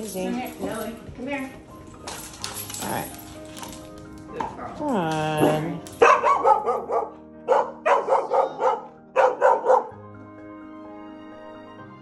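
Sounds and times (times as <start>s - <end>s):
background music: 0.0s - 12.0s
dog barking: 5.5s - 10.0s.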